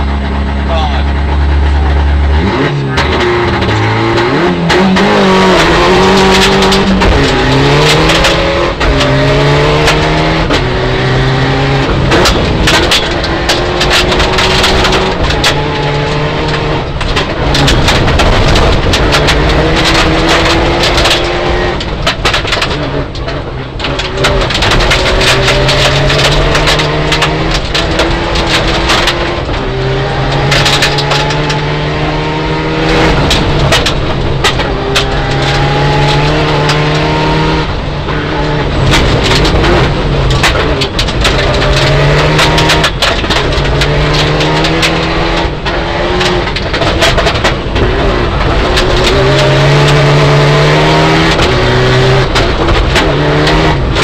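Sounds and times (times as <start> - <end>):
rally car engine accelerating: 0.0 - 54.0
gravel clattering against underbody: 4.7 - 31.7, 32.8 - 54.0.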